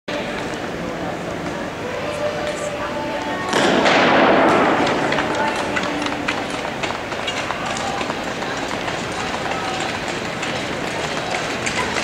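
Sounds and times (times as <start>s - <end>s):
crowd cheering and shouting: 4.6s - 12.0s.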